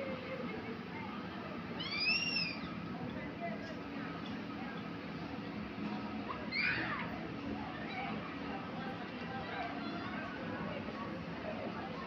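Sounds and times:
people chattering: 0.0s - 12.0s
child squealing: 1.8s - 2.6s.

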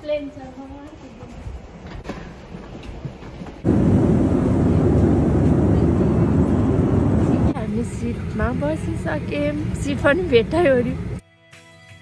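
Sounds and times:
loud steady rumbling roar: 3.6s - 11.2s.

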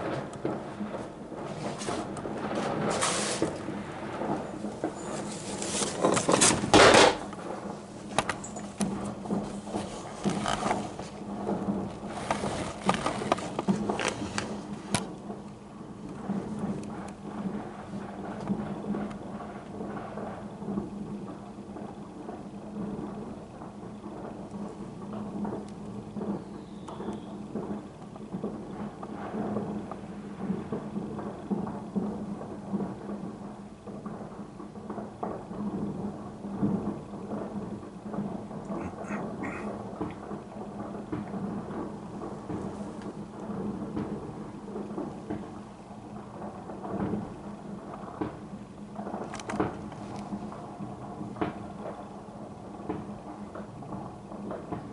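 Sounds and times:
distant fireworks bangs and crackles: 0.0s - 54.9s.

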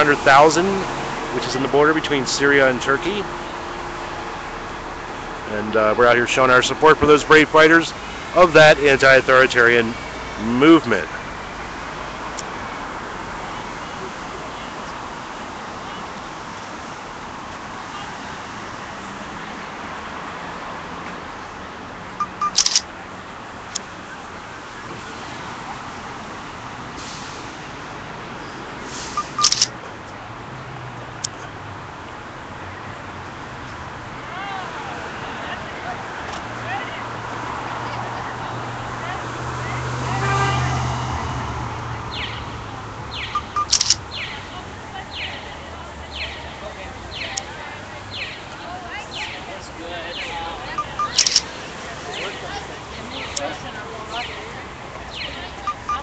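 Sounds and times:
street background noise: 0.0s - 56.0s
traffic rumble: 0.0s - 56.0s
sharp clicks: 22.2s - 22.8s, 29.2s - 29.7s, 43.4s - 44.3s, 50.8s - 51.5s
brief pitched tone: 50.8s - 51.3s
short high chirps: 50.8s - 51.4s.

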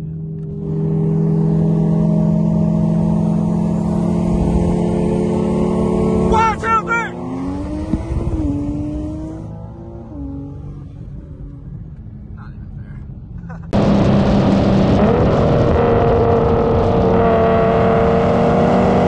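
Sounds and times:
car engine running hard: 0.0s - 19.0s.

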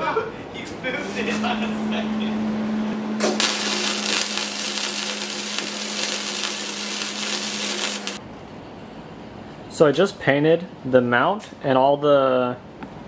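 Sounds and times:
steady low hum: 0.0s - 9.7s
arc welder crackling and sizzling: 3.2s - 8.2s.

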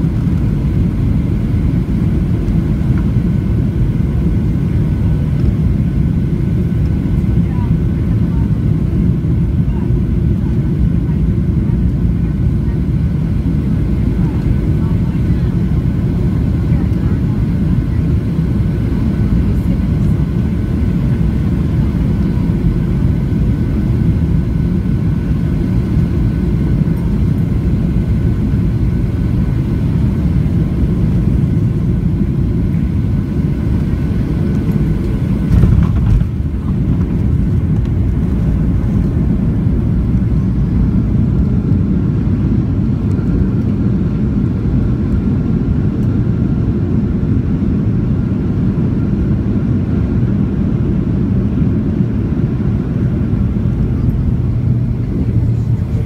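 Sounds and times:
airplane cabin rumble: 0.0s - 56.0s
faint engine whine: 0.0s - 56.0s.

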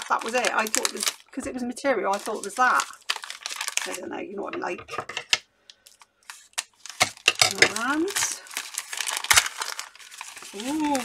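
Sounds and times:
paper crinkling and rustling: 0.0s - 4.1s, 5.8s - 11.0s
scissors snipping paper: 6.3s - 11.0s.

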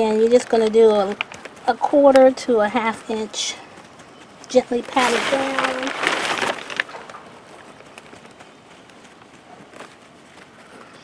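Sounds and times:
hand brushing potting soil: 4.5s - 7.0s.

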